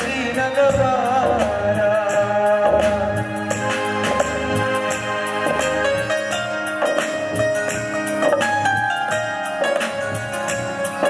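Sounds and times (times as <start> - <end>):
keyboard melody: 0.0 - 11.0
light percussion beat: 0.0 - 11.0.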